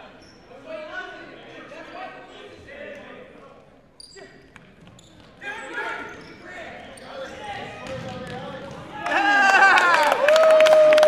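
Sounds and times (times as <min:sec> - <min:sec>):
voices calling out in echoing hall: 0:00.0 - 0:11.0.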